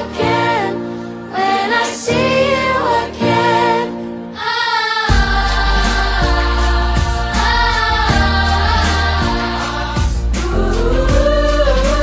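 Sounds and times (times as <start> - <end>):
children's choir singing: 0.0 - 12.0
pop backing track: 0.0 - 12.0
deep pulsing bass: 5.1 - 12.0.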